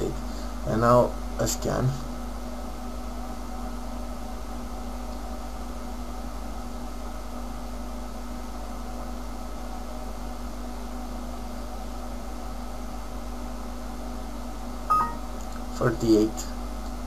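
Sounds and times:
electrical hum and hiss: 0.0 - 17.0
short high beep: 14.9 - 15.2.

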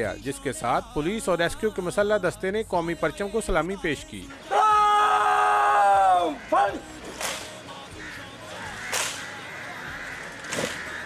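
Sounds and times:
steady background noise: 4.3 - 11.0
sharp crack: 7.0 - 7.6, 8.8 - 9.4, 10.2 - 11.0.

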